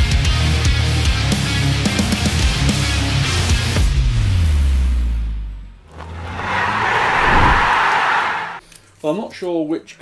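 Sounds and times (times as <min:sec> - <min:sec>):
whoosh: 0:06.7 - 0:08.6.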